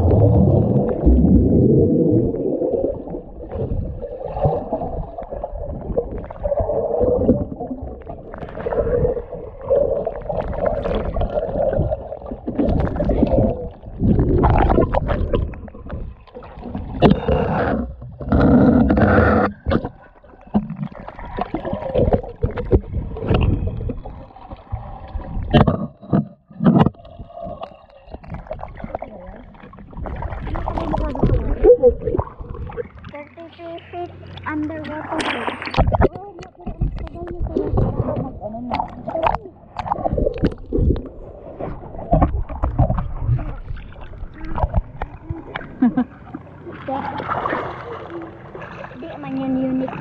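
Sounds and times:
muffled water sloshing: 0.0 - 50.0.

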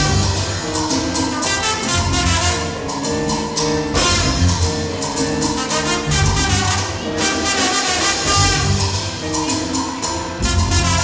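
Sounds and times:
live salsa band playing: 0.0 - 11.0.

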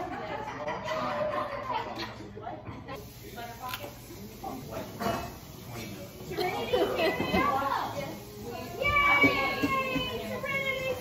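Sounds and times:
people laughing: 0.0 - 2.4, 6.3 - 7.5
people chattering: 0.0 - 11.0.

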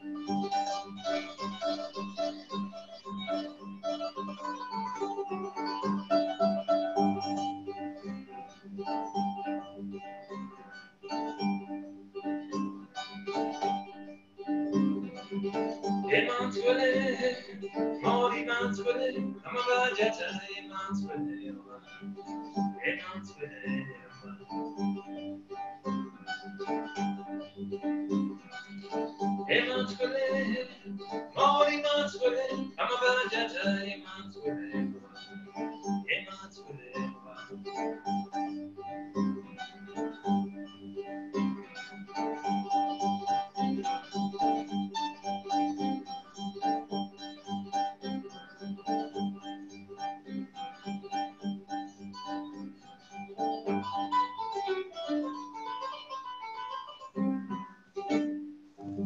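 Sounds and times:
harp plucked notes: 0.0 - 59.0
person singing: 15.5 - 25.2, 26.0 - 38.1.

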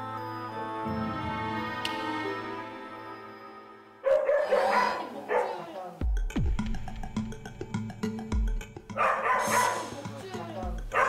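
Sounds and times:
dog barking aggressively: 4.0 - 5.7, 9.0 - 10.0.

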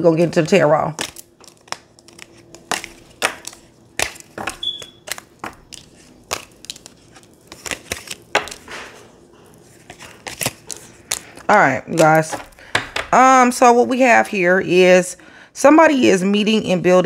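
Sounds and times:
cards clicking and rustling: 0.3 - 13.1.

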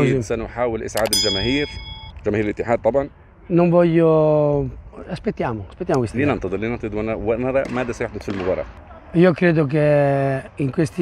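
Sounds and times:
notification bell ding: 1.1 - 2.2.

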